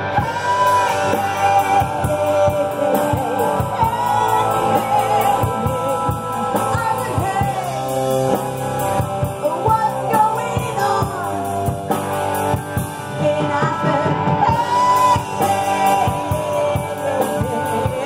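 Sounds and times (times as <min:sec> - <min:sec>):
person singing: 0:00.0 - 0:08.4, 0:09.3 - 0:12.1, 0:13.0 - 0:18.0
bass guitar: 0:00.0 - 0:18.0
drum kit beat: 0:00.0 - 0:18.0
electric guitar: 0:00.0 - 0:18.0.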